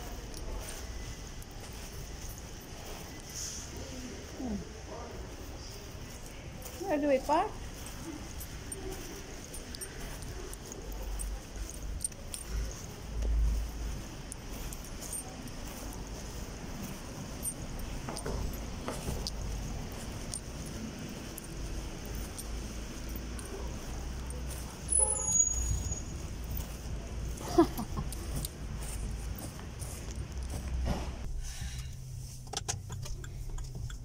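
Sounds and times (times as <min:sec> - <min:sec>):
car engine and road rumble: 0:00.0 - 0:34.0
small clicks and rattles: 0:05.7 - 0:30.9, 0:32.4 - 0:34.0.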